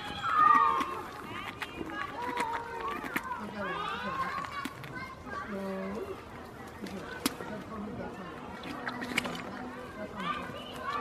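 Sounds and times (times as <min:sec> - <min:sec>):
goat crunching cucumber: 0:00.0 - 0:11.0.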